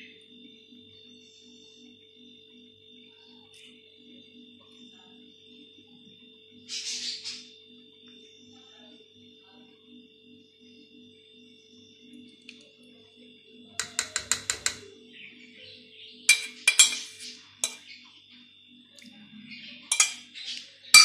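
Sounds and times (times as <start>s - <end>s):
metal spoon scraping metal pot: 16.3s - 17.8s, 19.9s - 20.3s.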